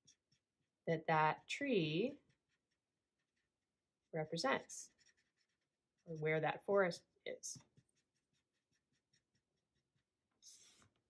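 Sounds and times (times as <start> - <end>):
marker scratching on paper: 0.0 - 11.0.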